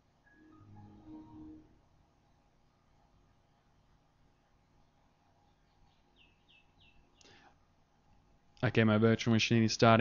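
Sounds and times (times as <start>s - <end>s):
computer system chime: 0.3s - 1.8s.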